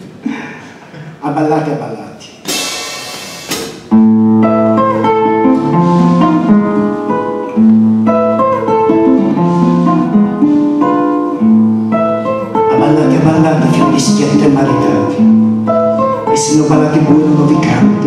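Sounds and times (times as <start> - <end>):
classical guitar folk tune: 3.8 - 18.0.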